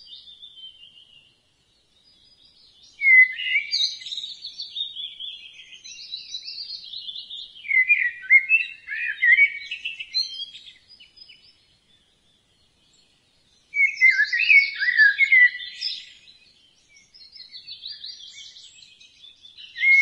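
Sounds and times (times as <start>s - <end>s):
songbird singing: 0.0s - 20.0s.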